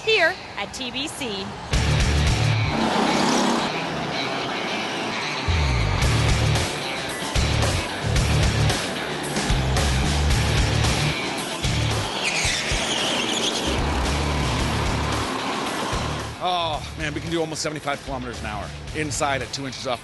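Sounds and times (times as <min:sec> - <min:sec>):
go-karts driving past: 0:02.7 - 0:06.0, 0:10.9 - 0:16.4
music with pulsing beat: 0:05.5 - 0:12.8
tyre squeal: 0:11.6 - 0:14.2.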